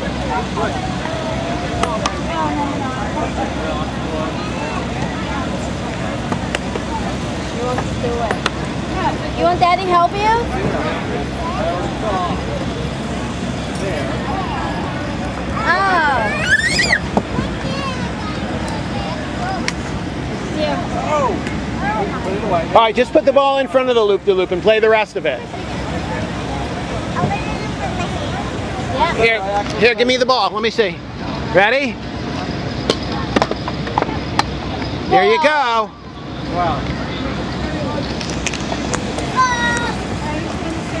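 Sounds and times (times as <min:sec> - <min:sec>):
low outdoor rumble: 0:00.0 - 0:41.0
people talking indistinctly: 0:00.0 - 0:41.0.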